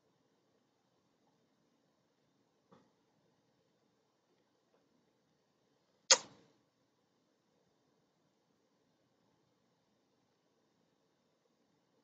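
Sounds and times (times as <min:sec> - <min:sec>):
sharp click: 0:06.1 - 0:06.3.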